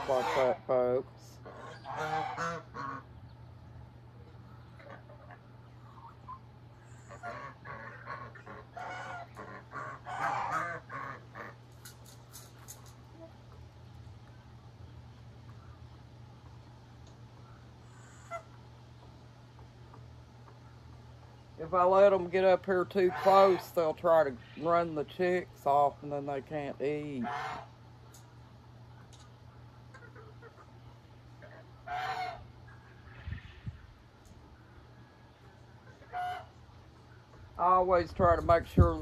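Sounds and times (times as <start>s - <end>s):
poultry calling: 0.0s - 12.0s, 17.3s - 19.2s, 19.8s - 25.0s, 27.0s - 27.8s, 29.0s - 37.6s
faint low hum: 0.0s - 39.0s
fowl call: 1.5s - 3.1s, 31.5s - 33.8s, 35.9s - 36.6s.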